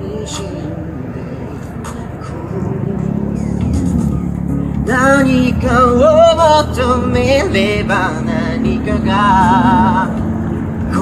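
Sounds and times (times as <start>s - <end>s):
person singing into microphone: 0.0s - 4.1s, 4.8s - 11.0s
pop backing track on amplifier: 0.0s - 11.0s.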